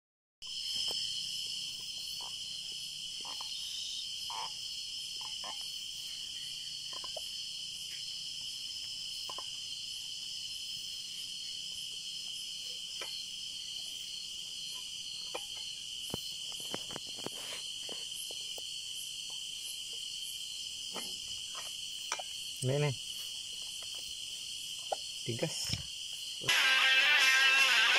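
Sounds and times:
crickets chirring: 0.4 - 27.9.

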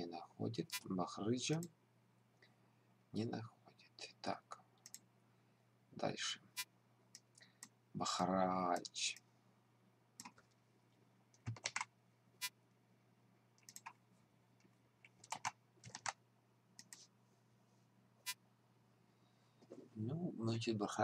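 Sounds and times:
faint low hum: 0.0 - 21.0
keyboard typing: 11.3 - 11.9, 13.6 - 14.0, 15.0 - 16.2.

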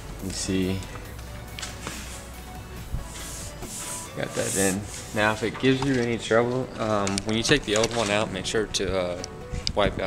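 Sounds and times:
electronic music with low bass: 0.0 - 10.0.

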